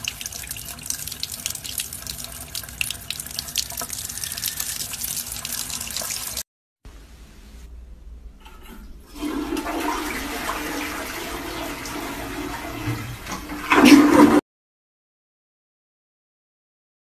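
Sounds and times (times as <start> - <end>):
toilet flushing: 0.0 - 6.4, 8.5 - 14.4.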